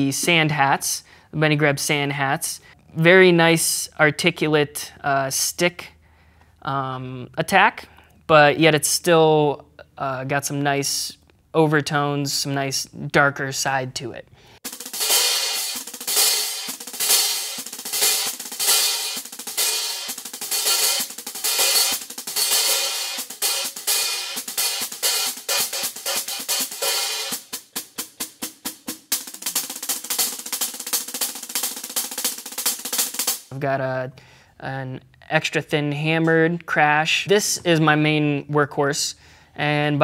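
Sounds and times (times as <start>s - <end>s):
hi-hats played with sticks: 14.6s - 33.6s.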